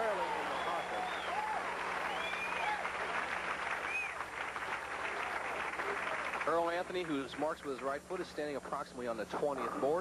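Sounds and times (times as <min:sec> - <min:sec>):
audience applauding: 0:00.0 - 0:07.2.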